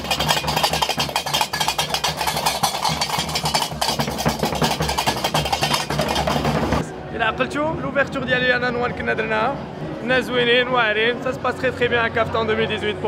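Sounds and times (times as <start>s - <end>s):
iron castanets clacking: 0.0s - 6.8s.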